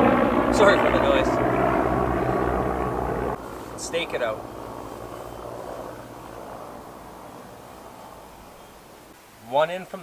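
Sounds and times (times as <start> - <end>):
distant engine drone: 0.0 - 9.2.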